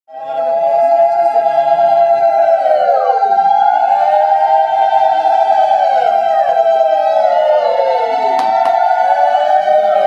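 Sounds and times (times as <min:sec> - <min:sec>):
conch shells blown: 0:08.3 - 0:09.1.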